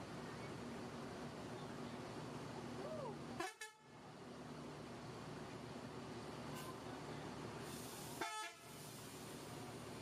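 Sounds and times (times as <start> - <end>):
bus diesel engine running: 0.0 - 10.0.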